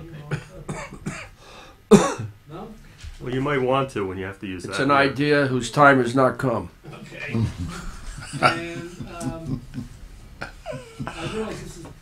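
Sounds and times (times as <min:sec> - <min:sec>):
sharp loud cough: 0:00.3 - 0:02.4.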